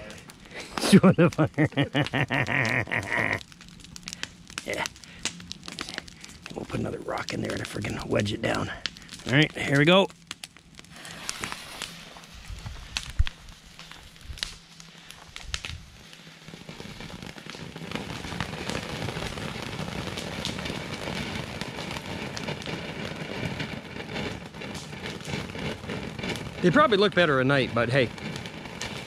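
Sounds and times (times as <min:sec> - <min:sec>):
firework hissing spray: 0:00.0 - 0:01.4, 0:10.9 - 0:29.0
firework crackling: 0:00.0 - 0:29.0.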